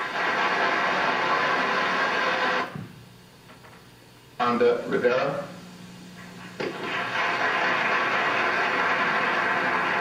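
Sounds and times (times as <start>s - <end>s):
audience applause over speakers: 6.7s - 10.0s.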